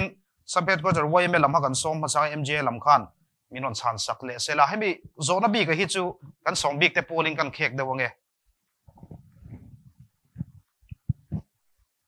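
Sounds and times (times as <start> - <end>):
clothing and paper rustling: 8.7 - 10.6.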